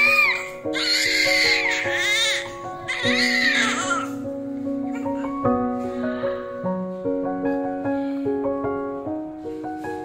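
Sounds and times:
newborn baby crying: 0.0s - 4.2s, 4.8s - 5.4s
background music sustained notes: 0.0s - 10.0s.

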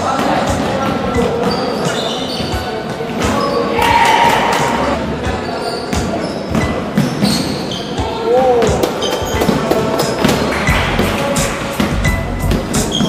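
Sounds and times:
players calling out: 3.3s - 5.2s.

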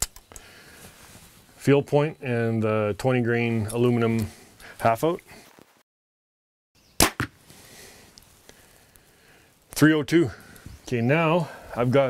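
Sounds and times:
arrow hitting with sharp knock: 7.0s - 7.4s
bowstring crack: 7.0s - 9.2s.

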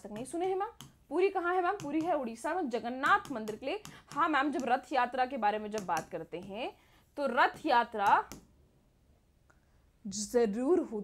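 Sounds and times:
woman speaking: 0.0s - 8.4s, 10.0s - 11.0s.

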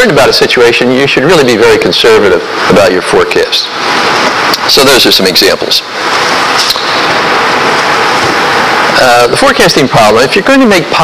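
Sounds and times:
loud steady hiss: 0.0s - 11.0s.

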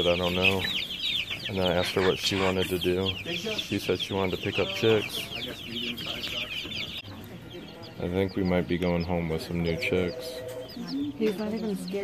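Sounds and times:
baby chicks peeping: 0.0s - 12.0s.

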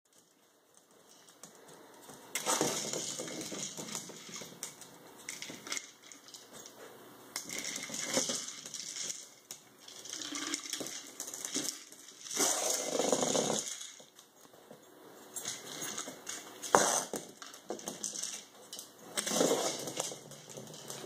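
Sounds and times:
puppy claws scrabbling on floor: 0.1s - 21.0s
plastic ball rolling and knocking: 0.8s - 6.4s, 7.4s - 14.3s, 15.4s - 21.0s.

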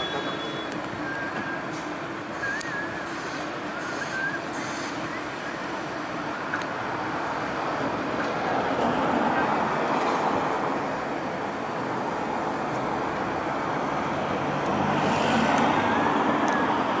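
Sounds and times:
city road traffic: 0.0s - 17.0s.

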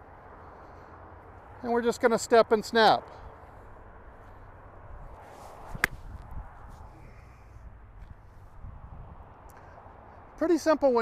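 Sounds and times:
golf club swing whoosh: 5.1s - 7.0s
golf club striking ball: 5.7s - 6.1s.

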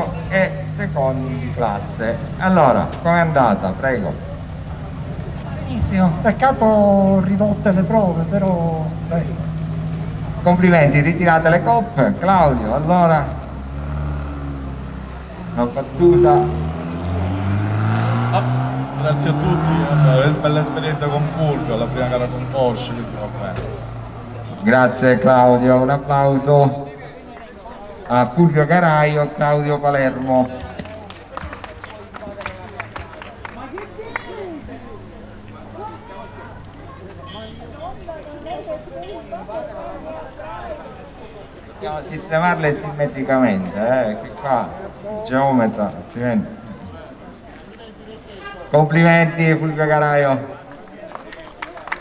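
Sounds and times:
car engine idling: 0.0s - 13.8s.

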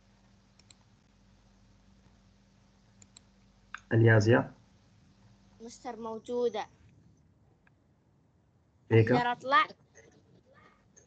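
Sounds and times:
low steady hum: 0.0s - 11.0s
computer mouse clicks: 0.5s - 0.9s, 3.0s - 3.9s
person speaking: 8.9s - 10.7s.

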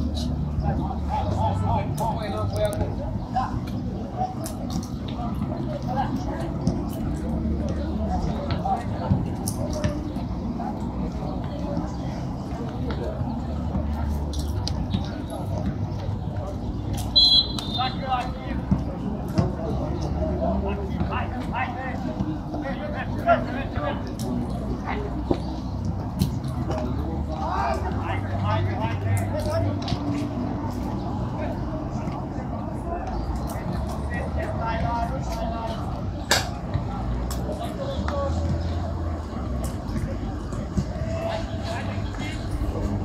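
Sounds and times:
distant indistinct voices: 0.0s - 43.0s.

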